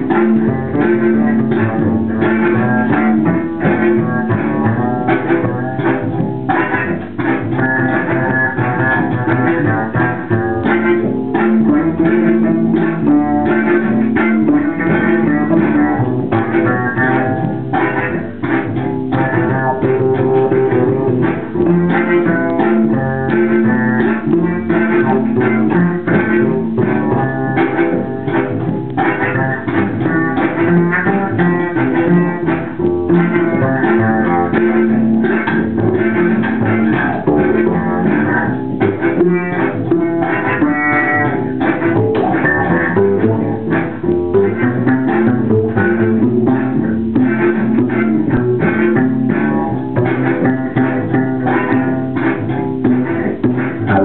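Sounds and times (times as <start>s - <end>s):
double bass plucked: 0.0s - 54.0s
looped bass phrases: 0.0s - 54.0s.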